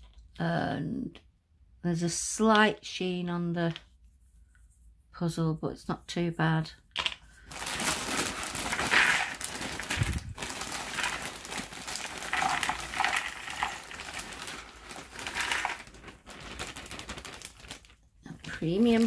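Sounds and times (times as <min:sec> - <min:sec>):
jigsaw pieces pattering into box: 0:07.0 - 0:19.0
plastic bag crinkling: 0:07.4 - 0:19.0.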